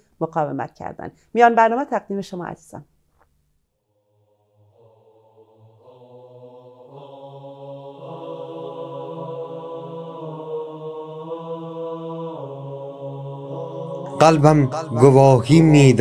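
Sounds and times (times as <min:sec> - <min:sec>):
slow chant-like devotional music: 0:04.0 - 0:16.0.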